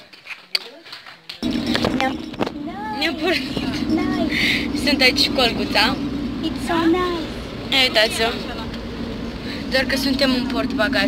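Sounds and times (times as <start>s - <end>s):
people talking: 0.6s - 8.9s, 9.5s - 11.0s
car engine and road noise: 1.4s - 11.0s.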